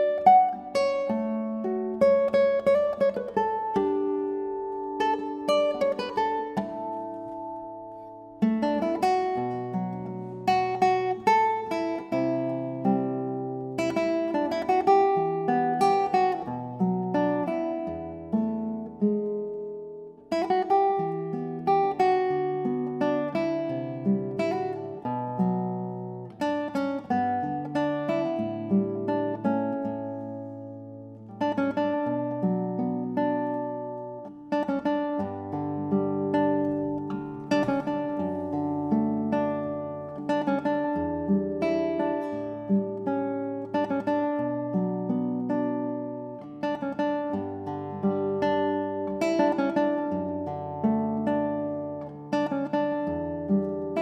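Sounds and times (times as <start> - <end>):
fingerpicked classical guitar: 0.0 - 54.0.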